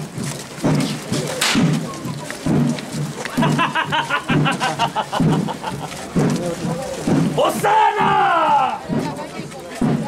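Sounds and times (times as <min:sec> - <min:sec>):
sharp crack: 0:01.3 - 0:02.6.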